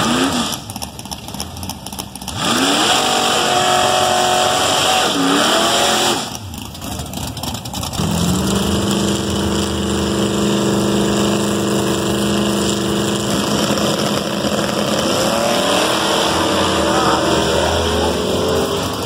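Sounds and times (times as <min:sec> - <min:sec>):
car engine revving: 0:00.0 - 0:19.0
tires spinning and hissing: 0:00.0 - 0:19.0.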